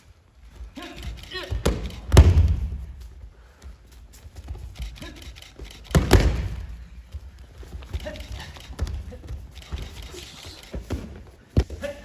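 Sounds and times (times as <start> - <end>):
bare feet thumping on mats: 1.6 - 3.0.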